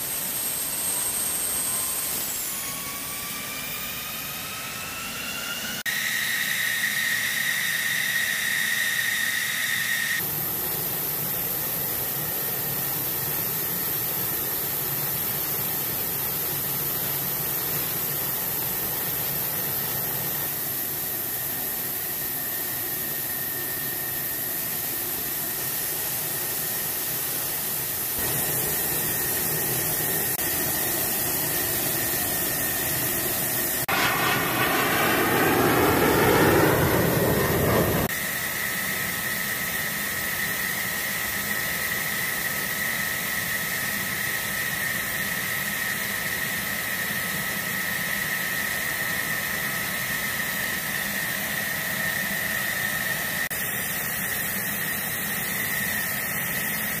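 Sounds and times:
jet engine whining: 0.0s - 57.0s.

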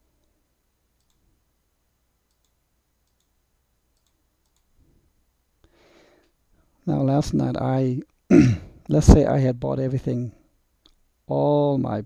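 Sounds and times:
computer mouse clicks: 1.0s - 1.3s, 2.2s - 4.8s.

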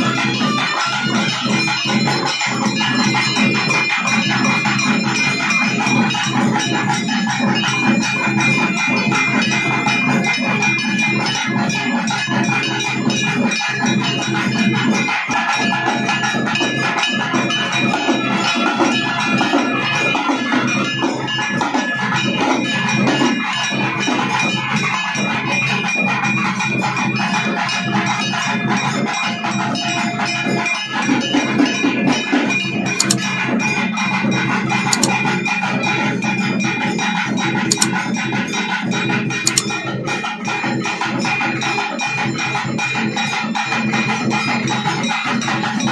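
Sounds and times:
drums beaten in fast rhythm: 0.0s - 45.9s.

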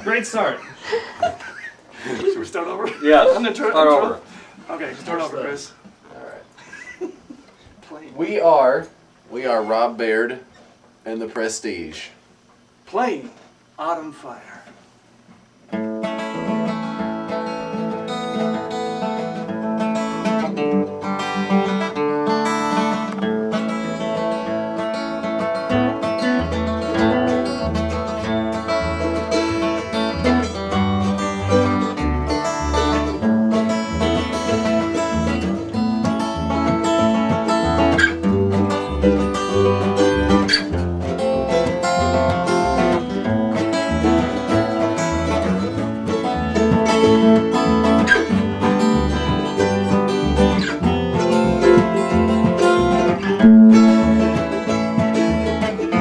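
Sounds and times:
acoustic guitar: 15.4s - 56.0s
mandolin: 15.8s - 56.0s
upright bass: 16.4s - 56.0s.

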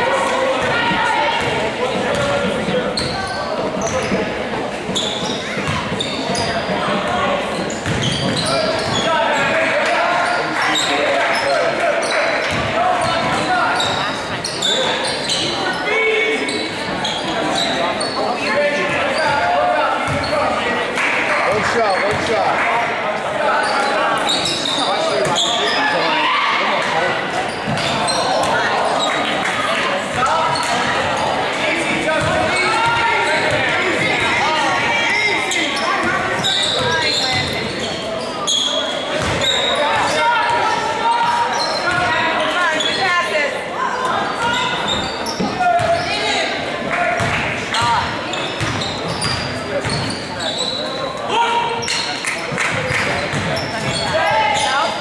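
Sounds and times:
people calling and shouting: 0.0s - 55.0s.

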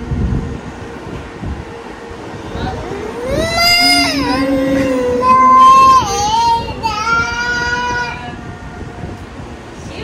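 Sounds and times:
child singing high notes: 3.2s - 8.3s.

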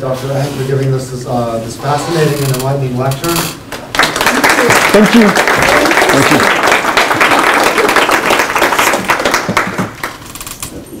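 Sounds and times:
audience applauding: 3.8s - 10.3s.

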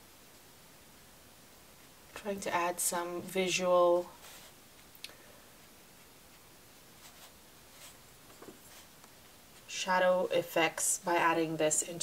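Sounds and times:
brush strokes on paper: 3.0s - 9.9s.

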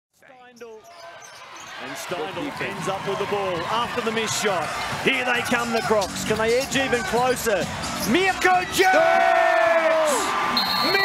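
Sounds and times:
arena crowd noise: 0.2s - 11.0s.

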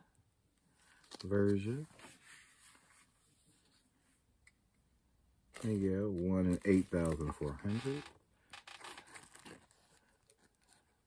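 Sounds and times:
paper rustling: 0.9s - 3.8s, 5.5s - 10.9s.

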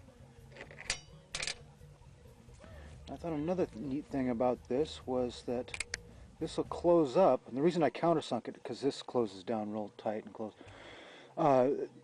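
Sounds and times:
low steady background hum: 0.0s - 12.0s.

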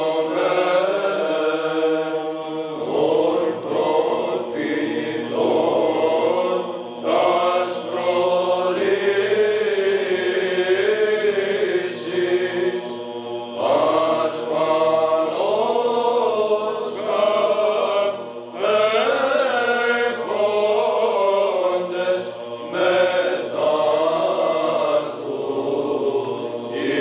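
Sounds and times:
slow melodic chant: 0.0s - 27.0s.

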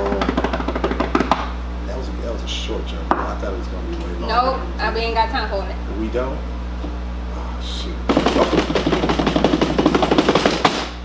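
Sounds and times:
rapid drum roll: 0.0s - 1.4s, 8.1s - 11.0s.

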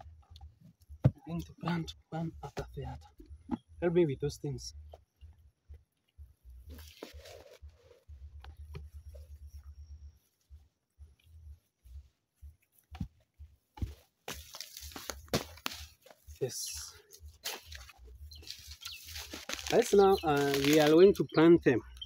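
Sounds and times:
footsteps on soil and grass: 6.7s - 7.7s, 11.8s - 21.2s.

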